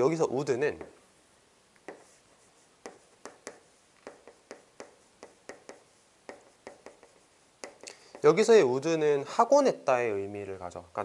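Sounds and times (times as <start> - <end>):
chalk tapping on chalkboard: 0.7 - 1.0, 1.8 - 8.4.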